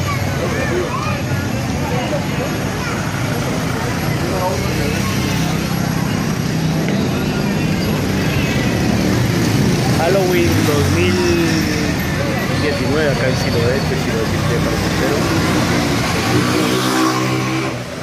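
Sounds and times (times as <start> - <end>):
cars passing: 0.0 - 18.0
crowd of people talking: 0.0 - 18.0
motorcycles passing: 0.0 - 18.0.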